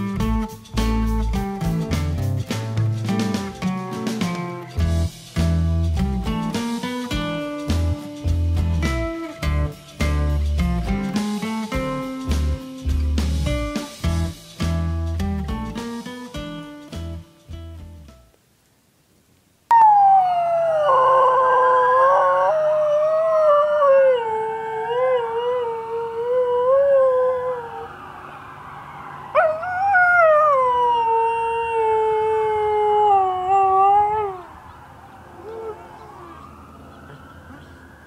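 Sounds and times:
dog howling: 0:19.7 - 0:27.9, 0:29.3 - 0:37.8
faint siren wailing: 0:19.7 - 0:38.0.

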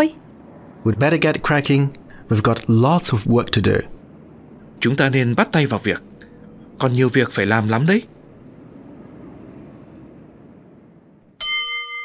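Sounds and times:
chime ringing: 0:11.4 - 0:12.0.

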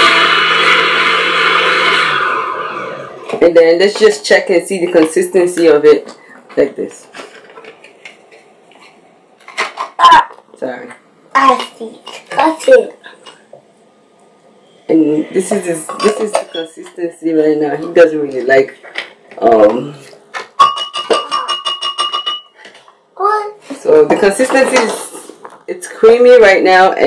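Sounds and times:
glass ringing tone: 0:20.6 - 0:22.5
spoon clattering against glass jar: 0:20.6 - 0:22.5.

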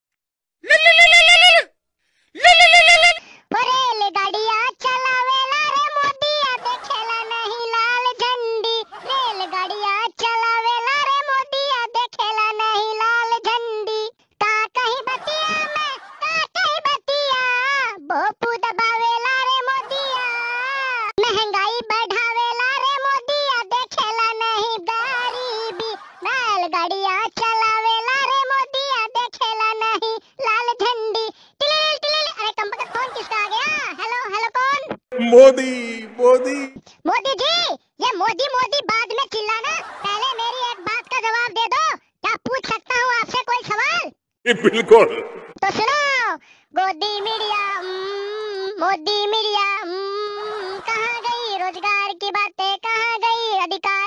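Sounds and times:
high-pitched cartoon voice singing: 0:35.2 - 0:36.8.

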